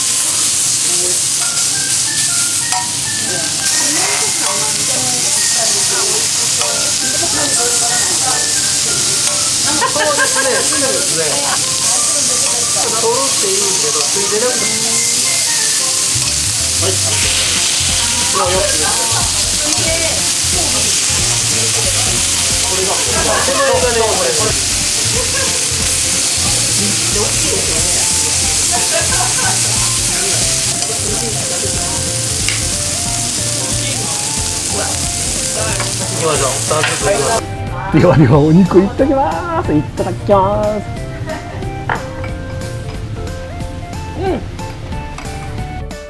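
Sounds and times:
meat sizzling on a griddle: 0.0 - 44.2.

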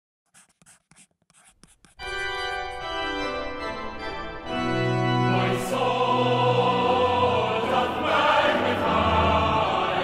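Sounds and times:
pen scratching on paper: 0.3 - 3.0.

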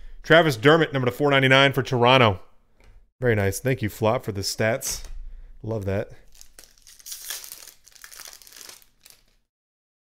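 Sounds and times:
foil wrapper crinkling and tearing: 6.2 - 9.5.

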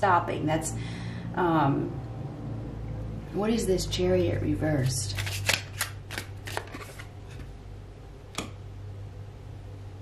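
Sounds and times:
cards being shuffled: 4.8 - 7.5
card snap: 5.2 - 6.9.

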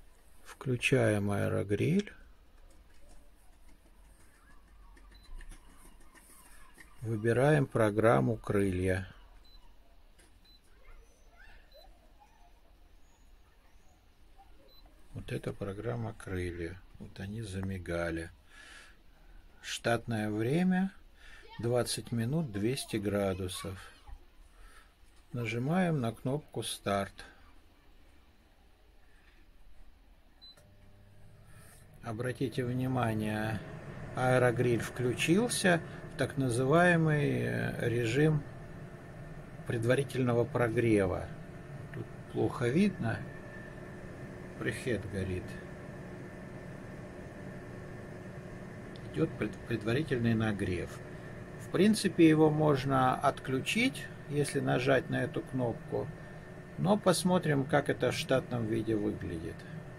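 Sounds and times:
fan motor humming: 30.5 - 59.9.

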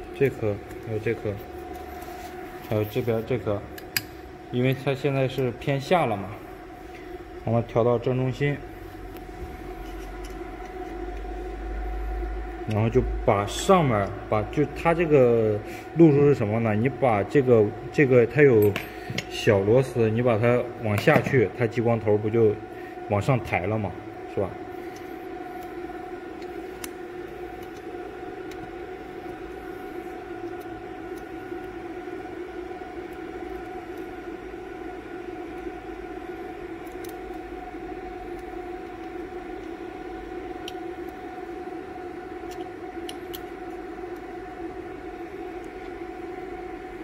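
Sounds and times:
cooling fans whirring: 0.0 - 47.0.

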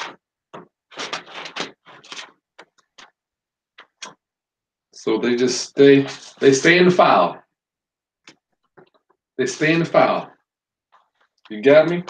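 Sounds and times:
paper sheets rustling: 0.0 - 3.2.

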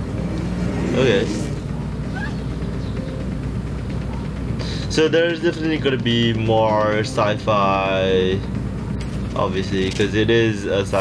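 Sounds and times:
low droning rumble: 0.0 - 11.0.

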